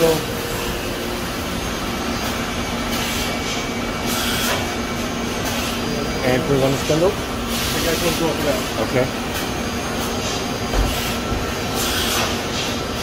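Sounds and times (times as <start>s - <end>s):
drilling machine humming: 0.0s - 13.0s.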